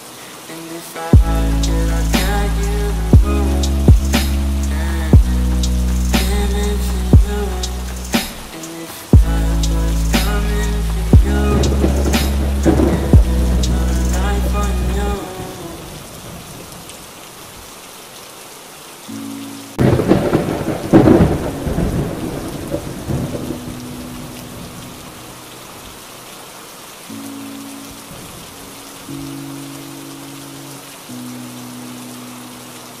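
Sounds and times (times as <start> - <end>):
steady rain: 0.0 - 33.0
thunder clap rumbling: 9.2 - 16.6, 19.8 - 25.0.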